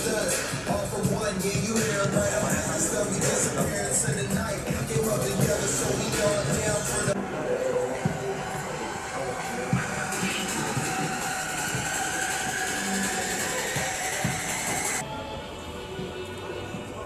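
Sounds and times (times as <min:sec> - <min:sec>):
noisy electronic music: 0:00.0 - 0:17.0.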